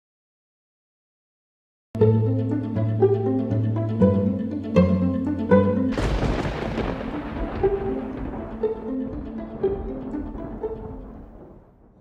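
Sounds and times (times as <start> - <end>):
boom with trailing rumble: 5.9 - 12.0.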